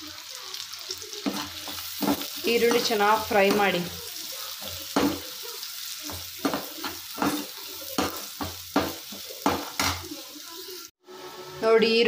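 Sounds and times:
onions sizzling in oil: 0.0 - 11.3
spoon scraping and knocking pan: 1.1 - 10.2.

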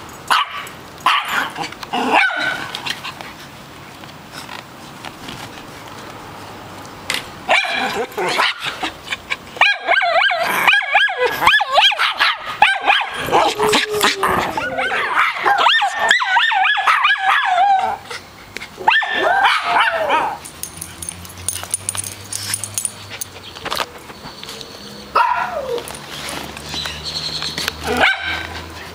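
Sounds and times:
small dog yapping: 18.8 - 20.4, 25.2 - 25.9, 27.8 - 28.5.

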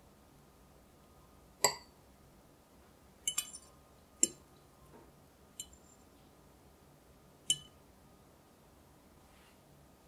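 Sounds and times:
fork clinking against glass: 3.3 - 4.4.

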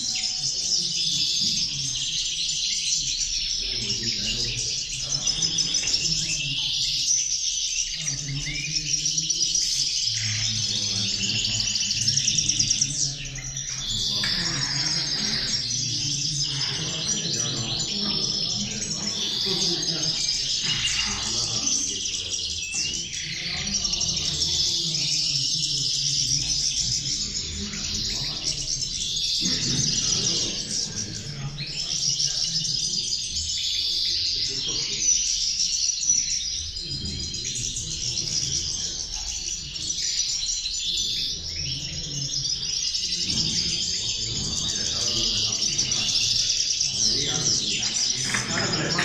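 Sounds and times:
finches twittering song: 0.0 - 49.0.

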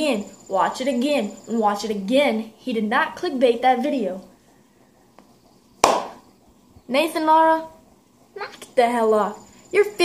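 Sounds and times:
sharp hand clap: 5.8 - 6.2.

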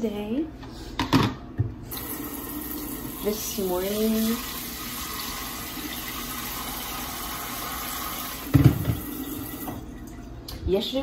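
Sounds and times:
tap water running into sink: 1.9 - 10.2.

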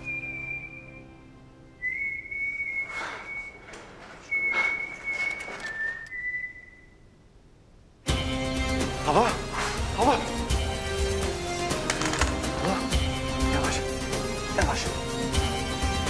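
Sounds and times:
high whistling notes: 0.0 - 7.2.

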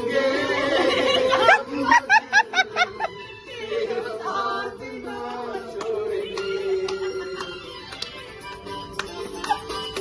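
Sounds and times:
person laughing: 1.2 - 3.2.

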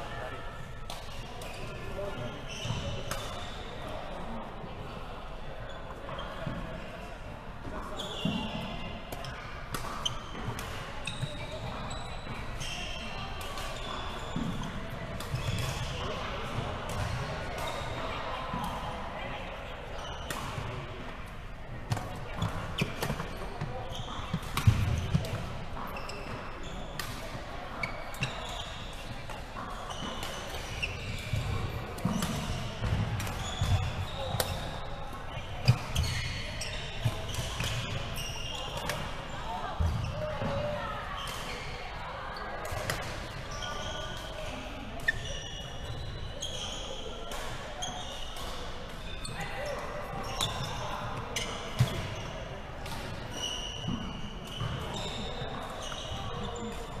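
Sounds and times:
shoe squeaks: 1.4 - 3.9, 7.9 - 16.2, 22.3 - 57.0
rackets striking shuttlecock: 30.1 - 34.7.

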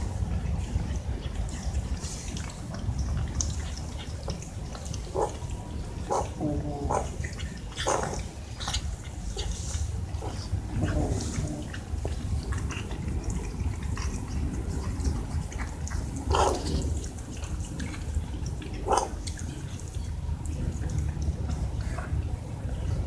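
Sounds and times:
cats chewing food: 0.0 - 23.0.

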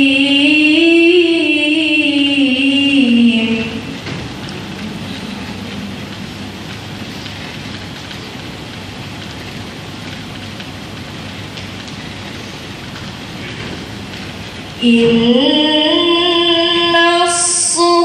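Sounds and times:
steady background hiss: 0.0 - 18.0.

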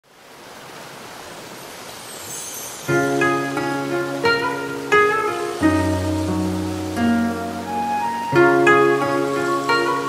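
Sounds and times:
waterfall rushing: 0.0 - 10.0.

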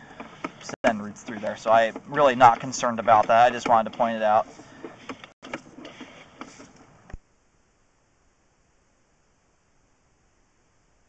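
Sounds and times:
cable clicking and rattling: 0.0 - 7.2.

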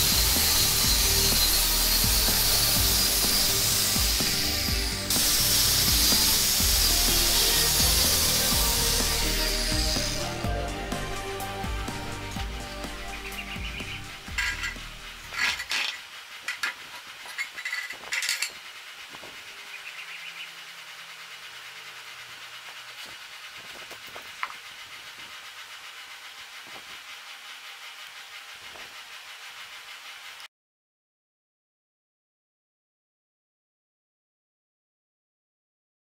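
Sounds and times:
low music: 0.0 - 15.4
metallic clinks and knocks: 14.3 - 18.6.

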